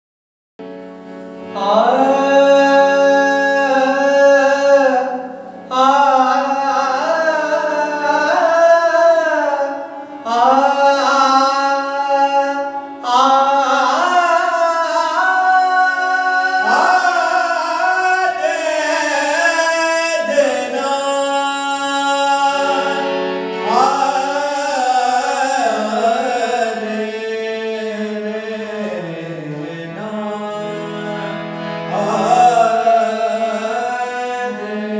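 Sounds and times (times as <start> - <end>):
sustained harmonium: 0.6 - 34.9
men singing slow song: 10.3 - 31.3, 31.9 - 34.9.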